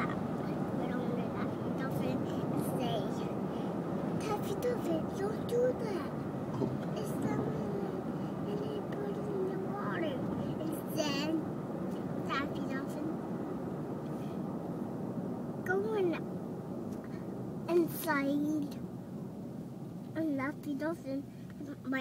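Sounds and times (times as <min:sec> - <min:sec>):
car road noise: 0:00.0 - 0:22.0.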